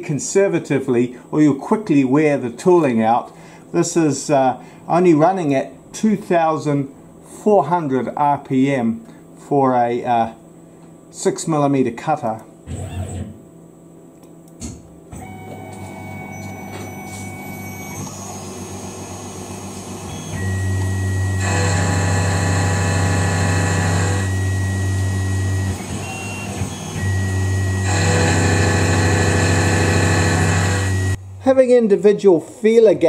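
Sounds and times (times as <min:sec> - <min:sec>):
milling machine hum and whine: 0:15.0 - 0:31.4.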